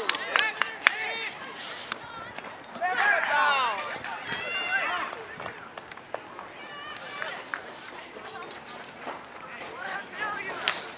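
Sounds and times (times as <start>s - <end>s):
people shouting wordless calls: 9.4s - 10.9s.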